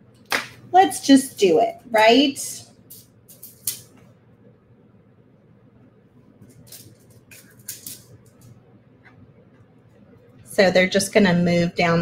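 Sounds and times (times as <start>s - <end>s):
beads clicking and rattling: 2.9s - 3.9s, 6.4s - 8.5s.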